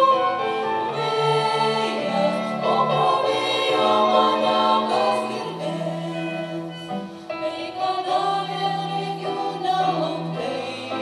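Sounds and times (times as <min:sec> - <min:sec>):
women's ensemble singing in harmony: 0:00.0 - 0:11.0.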